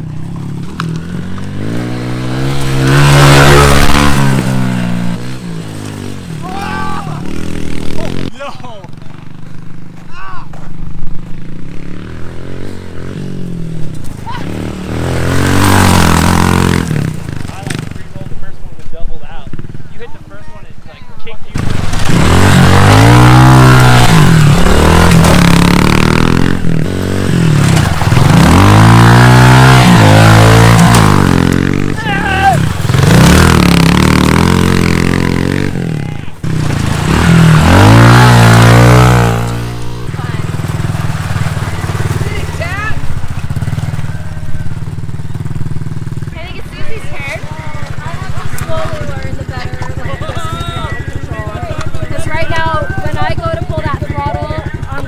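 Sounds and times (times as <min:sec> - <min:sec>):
motorbike engine revving: 0:00.0 - 0:10.0, 0:10.8 - 0:18.5, 0:21.5 - 0:55.0
motorbike engine idling: 0:39.5 - 0:55.0.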